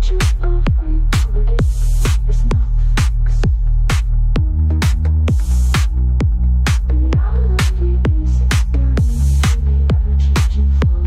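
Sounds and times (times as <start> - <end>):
four-on-the-floor kick drum: 0.0 - 11.0
held low bass: 0.0 - 11.0
hi-hat hiss: 1.2 - 4.2, 5.3 - 6.1.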